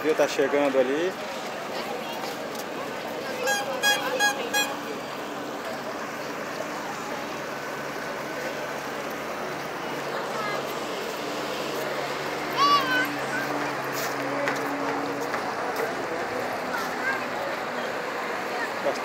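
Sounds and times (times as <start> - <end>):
boat diesel engine humming: 1.2 - 19.0.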